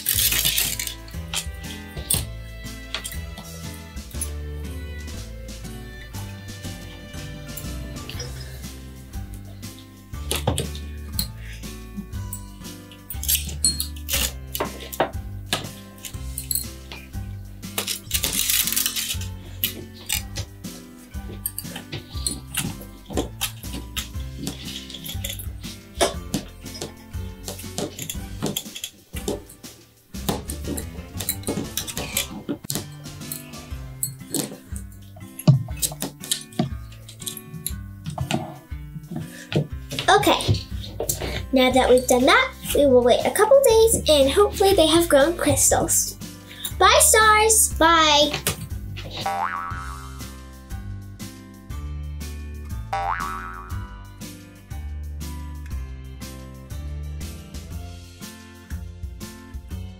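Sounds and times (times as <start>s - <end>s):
wire and glass jars clinking: 0.0s - 4.4s, 9.2s - 20.5s, 21.1s - 42.8s
background music: 0.0s - 59.9s.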